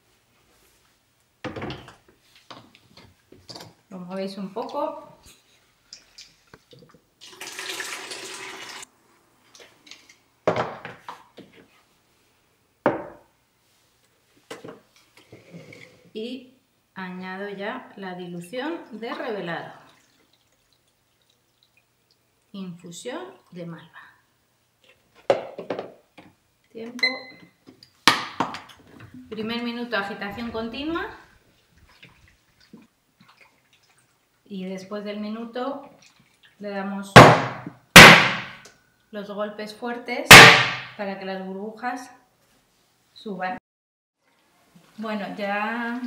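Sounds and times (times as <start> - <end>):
water pouring out: 5.9 - 8.9, 19.8 - 21.8.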